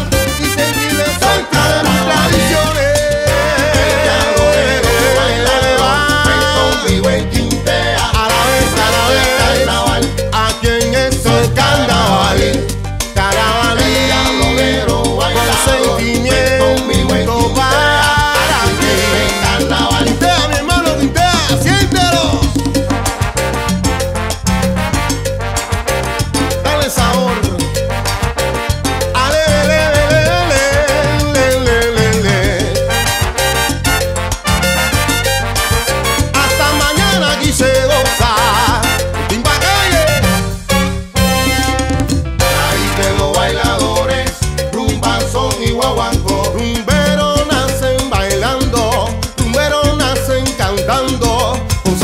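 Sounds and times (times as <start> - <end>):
percussion strokes: 0.0 - 52.0
salsa band playing: 0.0 - 52.0
strong bass line: 0.0 - 52.0.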